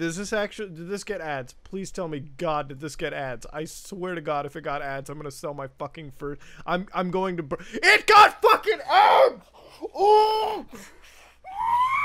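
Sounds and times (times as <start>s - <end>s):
man wailing: 7.8s - 10.8s, 11.5s - 12.0s.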